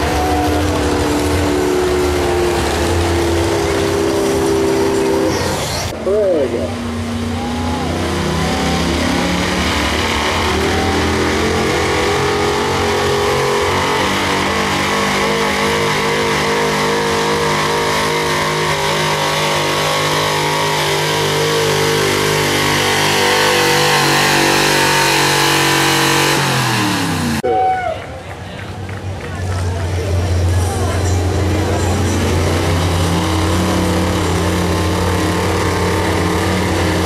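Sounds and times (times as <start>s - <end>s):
pickup truck engine at full throttle: 0.0s - 27.4s, 29.0s - 37.0s.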